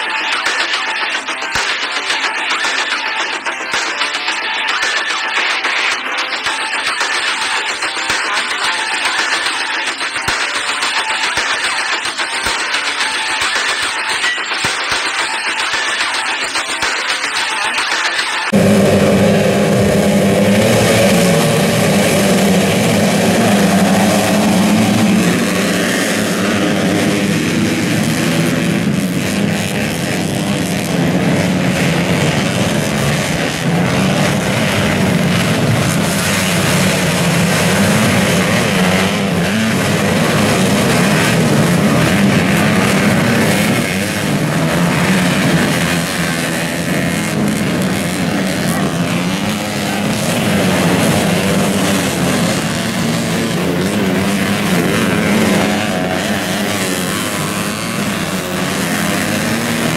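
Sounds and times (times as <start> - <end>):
motocross bikes revving: 18.5 - 59.9.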